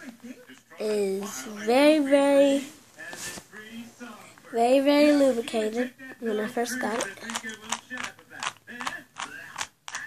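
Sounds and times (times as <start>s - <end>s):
puzzle cube clicking: 6.8s - 10.0s.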